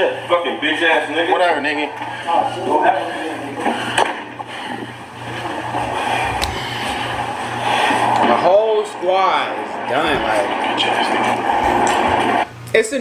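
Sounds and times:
muffled voices: 0.0 - 13.0.

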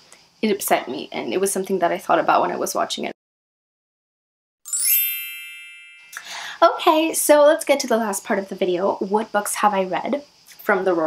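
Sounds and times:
bright bell-like chime: 4.7 - 6.5.

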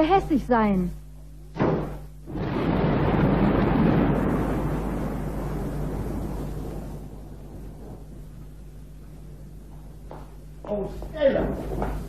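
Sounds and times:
thunder rumbling: 2.2 - 10.6.

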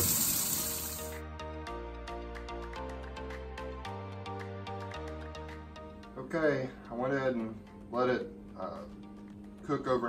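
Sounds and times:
tap water running into sink: 0.0 - 1.2.

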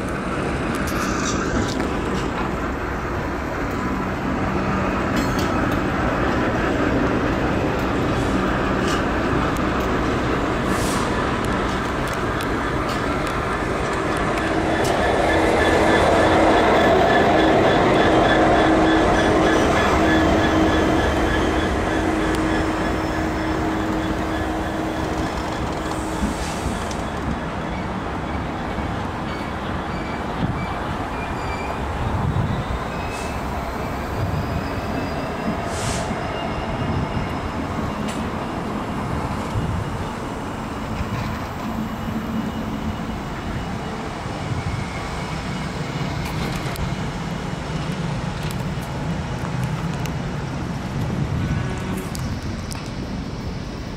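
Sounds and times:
diesel locomotives rumbling: 0.0 - 53.9
high wheel squeals: 12.6 - 47.2.

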